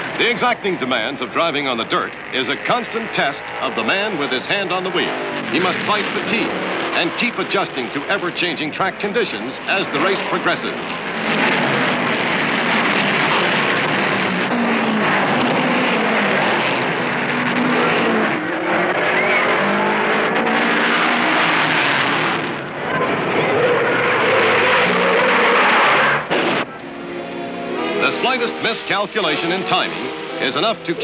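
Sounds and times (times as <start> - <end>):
race car engines: 0.0 - 31.0
music soundtrack: 26.7 - 31.0.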